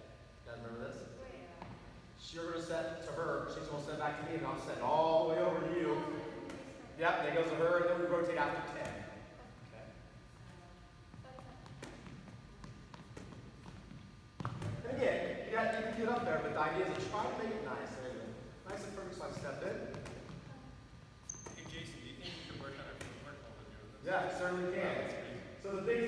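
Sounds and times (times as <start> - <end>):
volleyball bouncing on wooden floor: 1.6 - 1.8, 11.1 - 14.9, 18.6 - 20.5.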